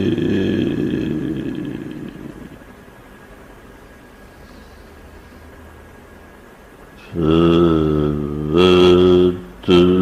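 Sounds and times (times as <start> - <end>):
deep male voice chanting: 0.0 - 2.6, 7.0 - 10.0
faint hiss: 0.0 - 9.7.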